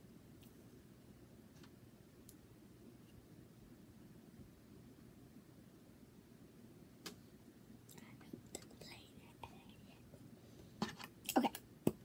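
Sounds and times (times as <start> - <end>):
soft whisper: 7.8 - 11.6.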